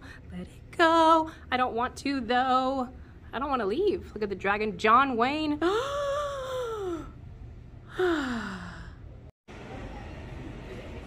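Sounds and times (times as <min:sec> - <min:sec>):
person sighing: 0:07.9 - 0:09.0.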